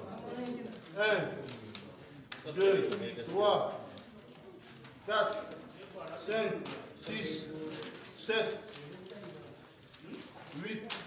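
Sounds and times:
man counting aloud: 0:00.9 - 0:01.6, 0:02.5 - 0:03.8, 0:05.0 - 0:08.8, 0:10.5 - 0:11.0.

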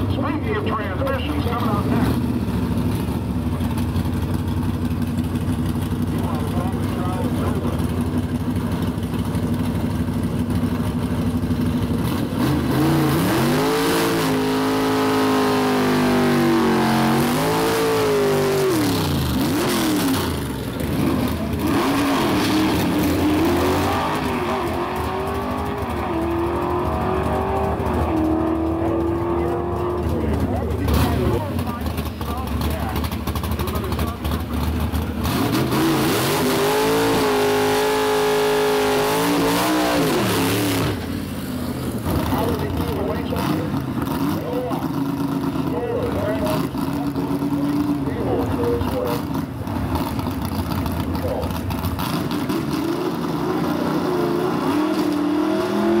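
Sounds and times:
drag car engine revving: 0:00.0 - 0:56.0
second car engine revving: 0:00.0 - 0:56.0.

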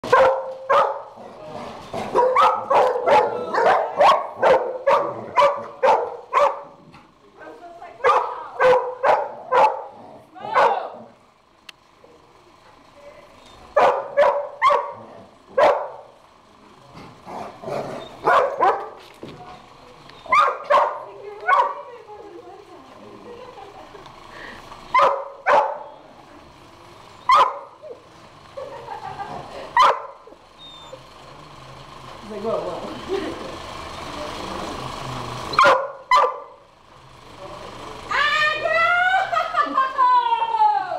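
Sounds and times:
dogs barking: 0:00.0 - 0:01.2, 0:02.0 - 0:06.9, 0:08.0 - 0:11.1, 0:13.7 - 0:16.2, 0:17.3 - 0:19.0, 0:20.2 - 0:21.9, 0:24.9 - 0:26.0, 0:27.2 - 0:28.0, 0:29.7 - 0:31.0, 0:35.5 - 0:36.6.

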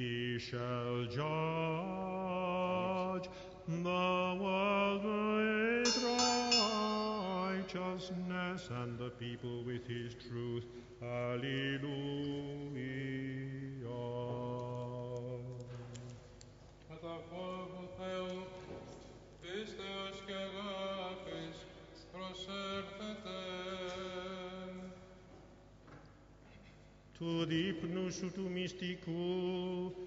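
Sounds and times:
slow sung chant melody: 0:00.0 - 0:25.5, 0:27.1 - 0:30.0.

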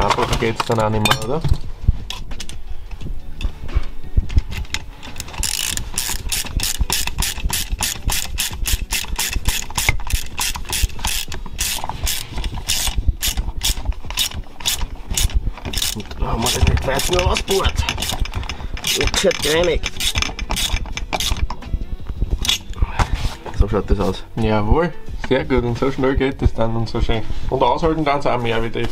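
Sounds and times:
hand ratchet clicking: 0:04.3 - 0:21.6, 0:22.4 - 0:22.8.

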